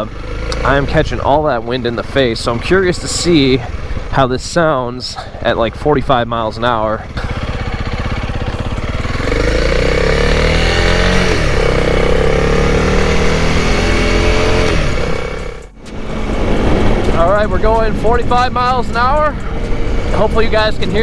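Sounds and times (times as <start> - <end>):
motorcycle engine: 0.0 - 21.0.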